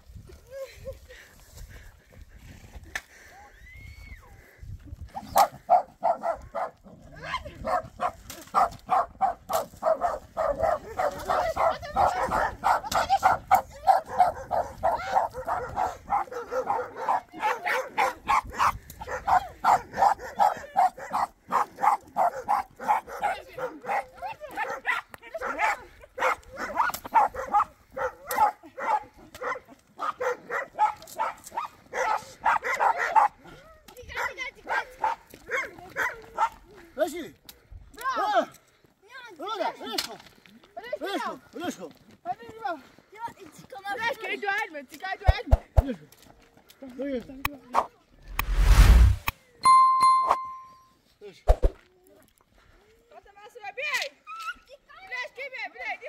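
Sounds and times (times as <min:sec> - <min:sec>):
dog barking rapidly: 0:05.4 - 0:06.8, 0:07.6 - 0:33.4.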